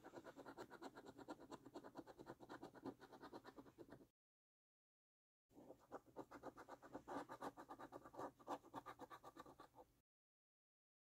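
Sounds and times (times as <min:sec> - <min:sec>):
coin scratching scratch card: 0:00.0 - 0:04.0, 0:05.6 - 0:09.8.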